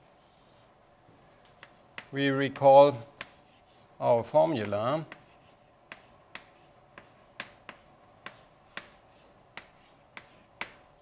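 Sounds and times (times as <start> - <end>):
chalk tapping on blackboard: 1.5 - 2.2, 3.1 - 3.9, 4.6 - 11.0.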